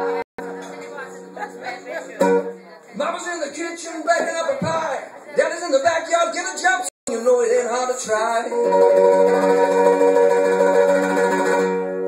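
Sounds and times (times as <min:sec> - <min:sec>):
mandolin sustained chord: 0:08.6 - 0:12.0.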